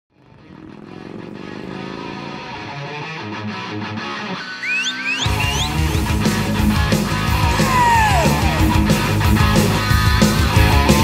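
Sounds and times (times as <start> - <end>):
motorcycle engine running: 0.1 - 3.1, 5.3 - 11.0.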